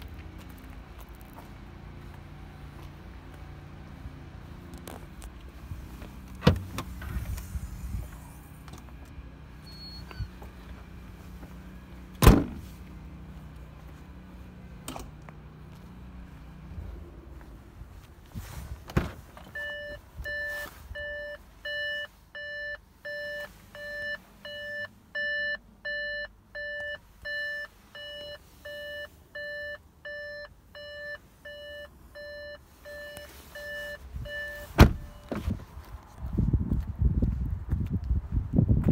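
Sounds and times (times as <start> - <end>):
car warning chime beeping: 9.6 - 10.3, 19.5 - 35.4
loud thump: 12.2 - 12.6, 34.8 - 35.5.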